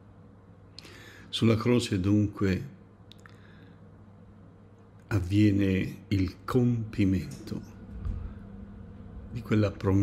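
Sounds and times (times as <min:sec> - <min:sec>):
low room tone hum: 0:00.0 - 0:10.0
wet mouth clicks: 0:03.1 - 0:03.4.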